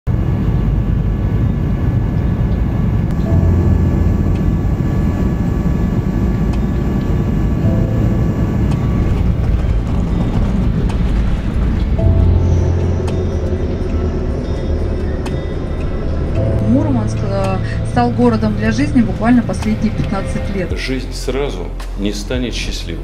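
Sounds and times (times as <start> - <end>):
faint whining tones: 0.1 - 20.8
jet engine and airflow rumble: 0.1 - 23.0.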